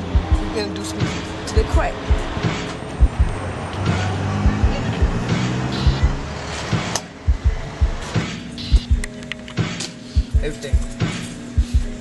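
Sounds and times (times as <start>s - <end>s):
background music with drum beat: 0.0s - 12.0s.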